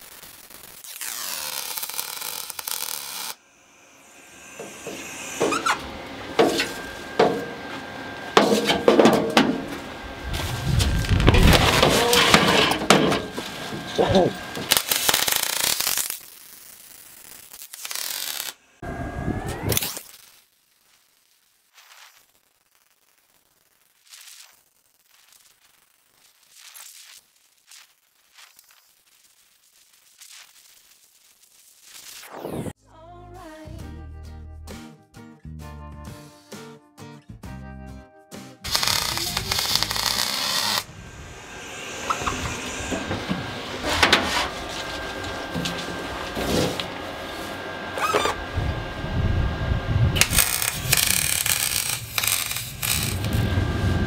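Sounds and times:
welding arc crackling and buzzing: 0:00.0 - 0:32.8, 0:38.6 - 0:54.0.

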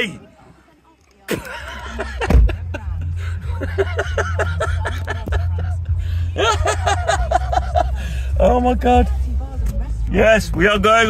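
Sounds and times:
man laughing: 0:01.4 - 0:08.2
low steady rumble: 0:01.4 - 0:11.0.

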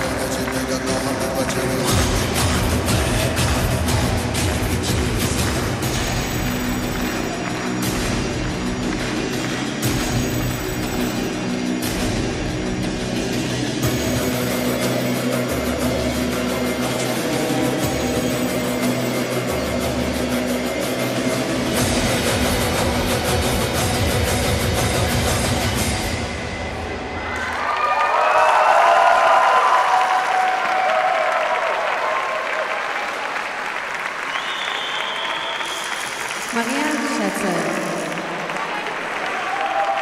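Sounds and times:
audience applauding and cheering: 0:00.0 - 0:11.9, 0:27.0 - 0:40.0
recorded music with low beat: 0:00.0 - 0:26.7.

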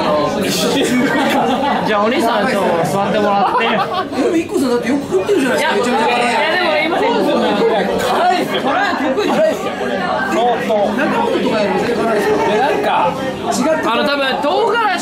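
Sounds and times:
chatter of diners: 0:00.0 - 0:15.0.

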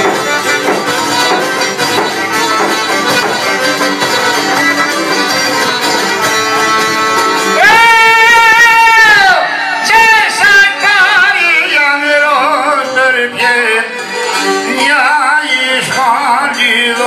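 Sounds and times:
accordion: 0:00.0 - 0:07.9, 0:09.4 - 0:17.0
plucked long-necked lutes: 0:00.0 - 0:08.8, 0:10.3 - 0:17.0
violin: 0:00.0 - 0:17.0.

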